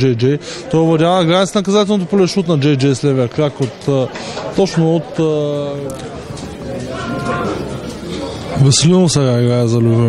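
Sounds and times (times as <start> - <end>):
football match crowd noise: 0.0 - 10.0.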